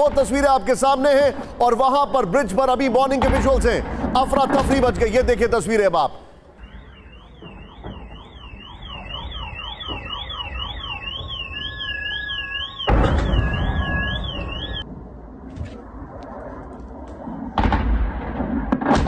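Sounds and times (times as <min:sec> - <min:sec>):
electronic siren warbling: 0:06.5 - 0:14.9.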